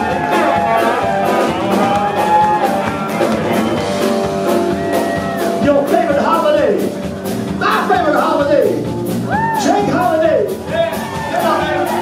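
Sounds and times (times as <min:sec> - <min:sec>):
electric guitar bending notes: 0:00.0 - 0:05.6
live band playing: 0:00.0 - 0:12.0.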